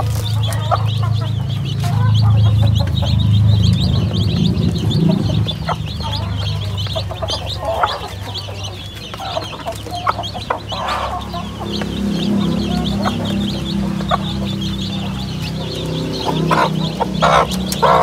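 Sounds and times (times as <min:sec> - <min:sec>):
beaks pecking plastic tray: 0:00.0 - 0:18.0
chicks peeping: 0:00.0 - 0:18.0
hen clucking: 0:00.0 - 0:18.0.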